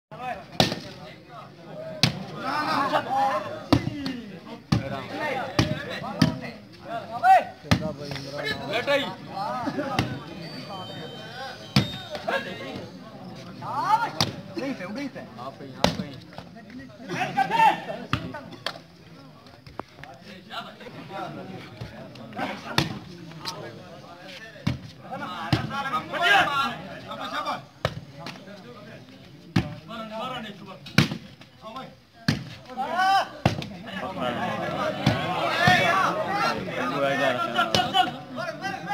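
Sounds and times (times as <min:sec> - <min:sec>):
crowd and players calling out: 0:00.1 - 0:38.9
people shouting: 0:01.8 - 0:04.3, 0:13.6 - 0:14.4, 0:17.1 - 0:18.0, 0:25.1 - 0:27.6, 0:32.7 - 0:38.9.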